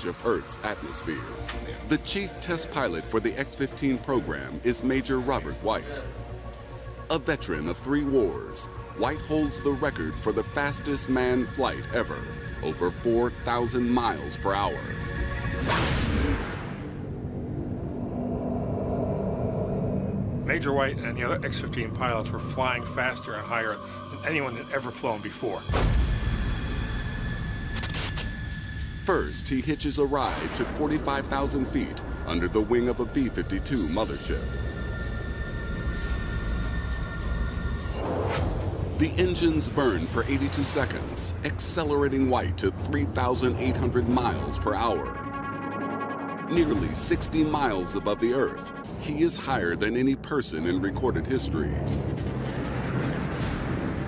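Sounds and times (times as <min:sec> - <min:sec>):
background music: 0:00.0 - 0:18.6, 0:20.1 - 0:54.0
jet engines droning: 0:16.8 - 0:27.7.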